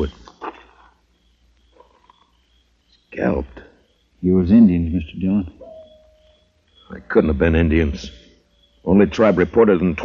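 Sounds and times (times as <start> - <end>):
faint short high chirps: 5.6 - 7.3.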